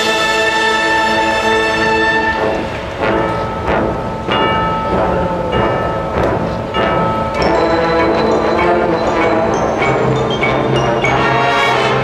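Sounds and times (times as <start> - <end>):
struck bell-like percussion notes: 2.3 - 12.0.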